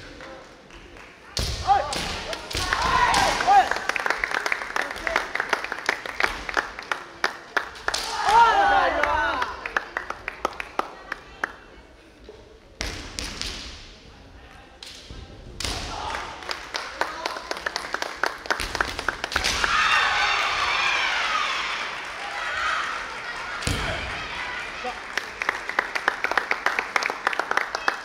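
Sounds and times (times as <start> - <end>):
fencers shouting: 8.0 - 9.4.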